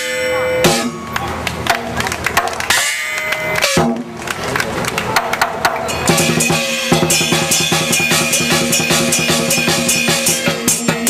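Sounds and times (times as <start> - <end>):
cymbals ringing: 0.0 - 2.0, 2.6 - 4.2, 5.6 - 11.0
drum strikes: 0.0 - 4.3, 5.1 - 11.0.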